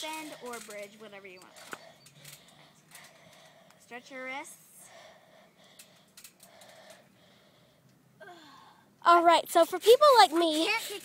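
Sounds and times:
girl's voice: 0.0 - 1.7, 8.2 - 11.0
faint rustles and clicks: 0.0 - 3.8, 9.5 - 11.0.

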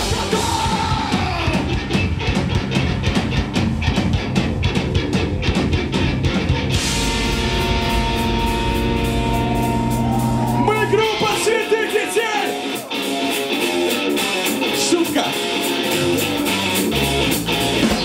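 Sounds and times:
drum kit rapid strokes: 0.0 - 18.0
rock band playing: 0.0 - 18.0
sustained ringing guitar chord: 6.8 - 10.6.

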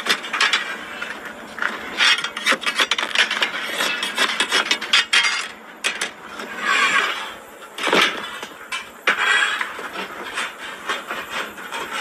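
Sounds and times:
metal scraper scraping tandoor wall: 0.0 - 12.0.

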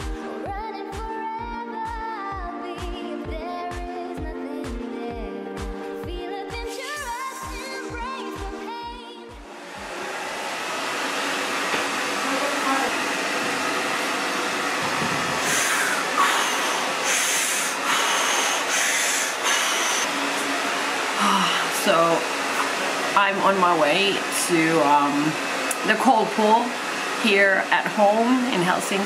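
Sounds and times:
person breathing forcefully: 15.0 - 20.1.

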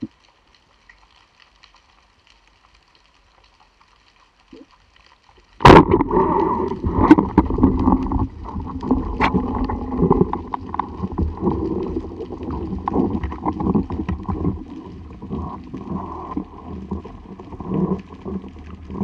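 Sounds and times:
crackling water ambience: 0.0 - 19.0
water rushing over camera: 5.5 - 19.0.

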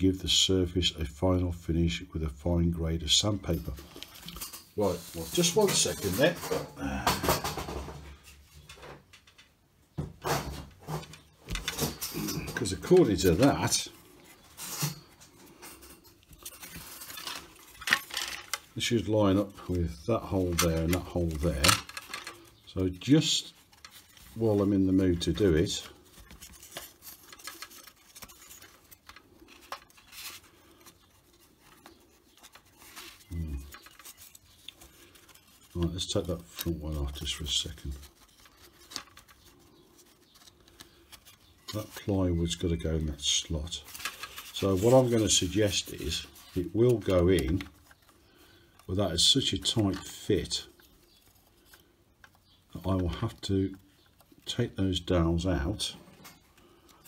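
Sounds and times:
model aircraft parts clicking and tapping: 26.1 - 33.1.

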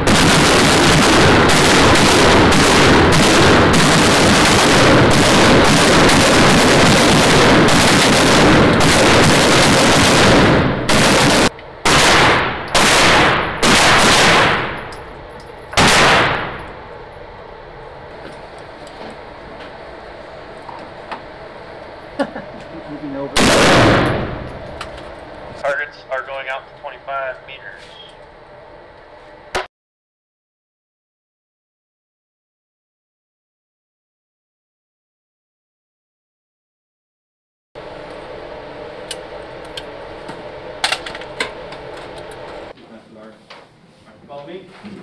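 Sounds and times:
gunshots echoing indoors: 0.0 - 15.0, 15.8 - 16.8, 23.4 - 24.7.

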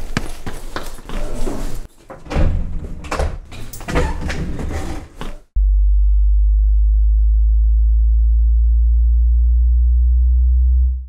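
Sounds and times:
deep electronic hum: 5.6 - 11.0.

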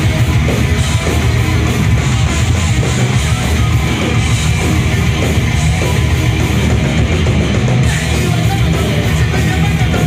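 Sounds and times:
live metal band playing: 0.0 - 10.0.

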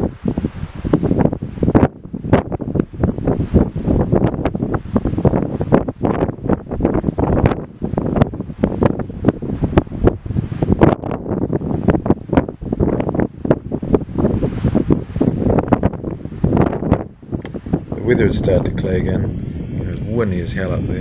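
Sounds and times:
gusty wind buffeting microphone: 0.0 - 21.0.

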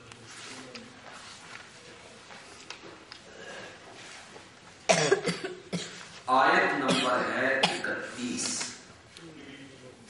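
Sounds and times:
person coughing: 4.9 - 6.0, 6.9 - 7.9.

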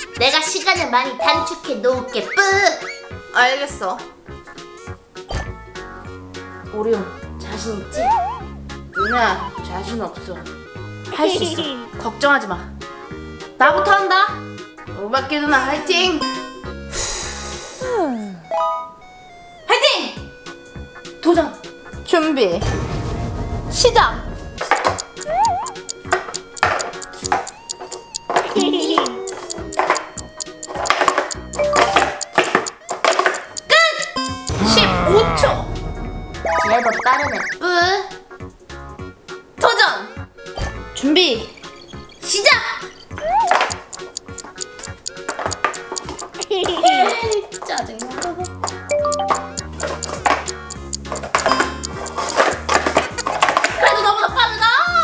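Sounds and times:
background music: 0.0 - 55.0
plastic cups clacking: 24.6 - 34.2, 45.2 - 54.0
person laughing: 28.5 - 29.3, 34.5 - 35.7, 46.4 - 47.3
background music with bass line: 34.2 - 36.9.

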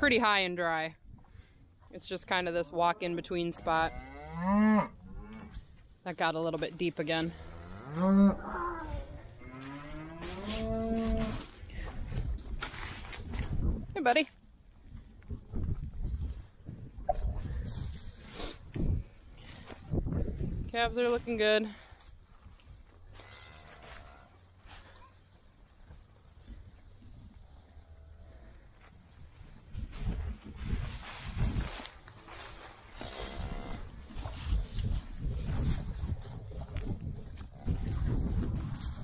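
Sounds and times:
cow mooing: 7.3 - 11.4.

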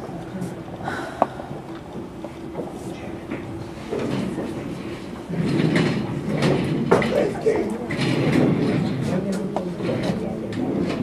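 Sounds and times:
murmured voices: 0.0 - 11.0.

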